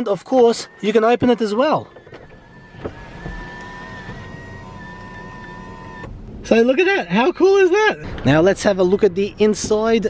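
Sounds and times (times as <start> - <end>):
sunroof motor whining: 0.0 - 8.0
low hum: 0.0 - 10.0.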